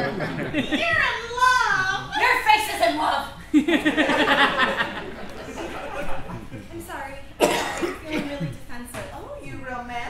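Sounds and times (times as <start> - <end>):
woman's voice on stage: 0.6 - 3.4, 6.7 - 10.0.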